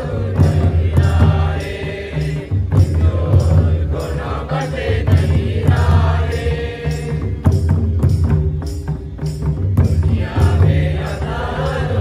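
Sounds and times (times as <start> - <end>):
group singing: 0.0 - 8.3, 9.8 - 12.0.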